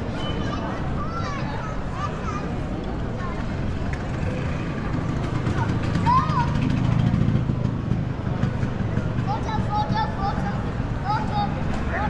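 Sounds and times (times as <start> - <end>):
passersby talking: 0.0 - 12.0
vehicle passing: 3.2 - 12.0.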